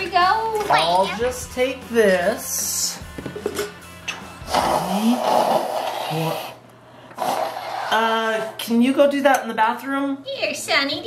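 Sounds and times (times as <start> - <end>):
person blowing nose: 4.4 - 6.6, 7.2 - 8.5.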